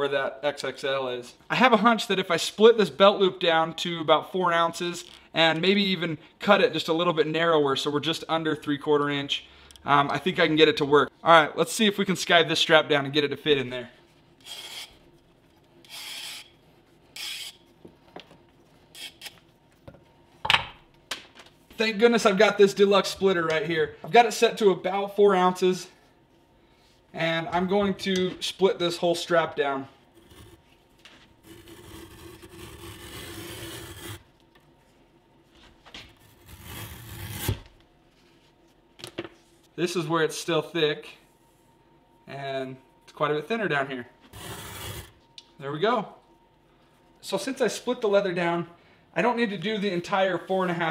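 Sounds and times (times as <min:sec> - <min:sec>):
leather strap scraping through cutter: 0:31.4 - 0:34.2, 0:36.2 - 0:37.7.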